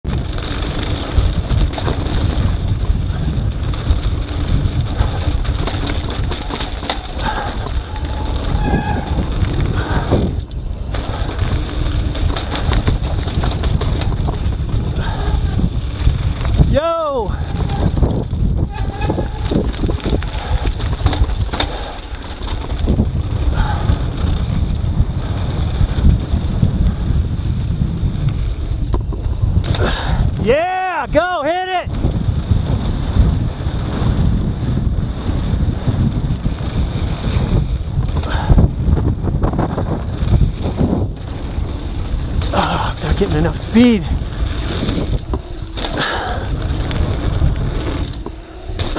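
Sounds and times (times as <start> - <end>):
bike tyres rumbling on dirt: 0.0 - 48.9
wind buffeting microphone: 0.0 - 48.9.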